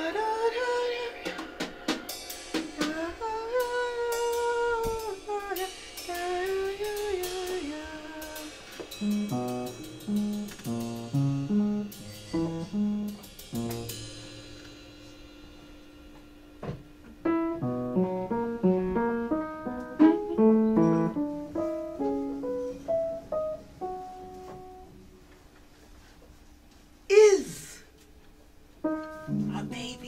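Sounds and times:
woman singing sliding notes: 0:00.0 - 0:08.6, 0:29.3 - 0:30.0
cymbal and drum strokes: 0:01.1 - 0:17.4
piano choppy low notes: 0:02.8 - 0:25.2, 0:28.8 - 0:30.0.

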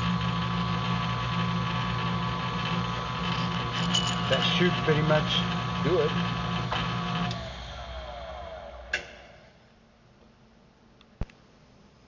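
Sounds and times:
milling machine motor whining: 0:00.0 - 0:09.0.

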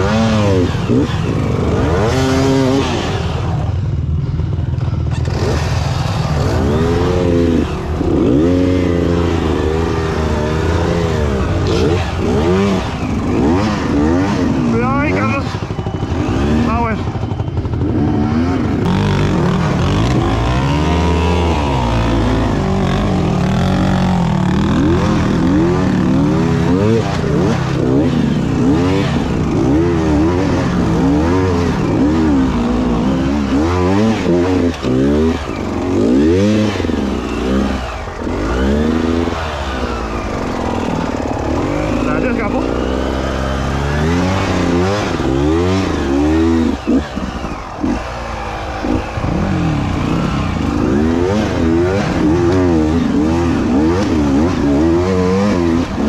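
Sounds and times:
two-stroke motorbike engine revving: 0:00.0 - 0:56.0.

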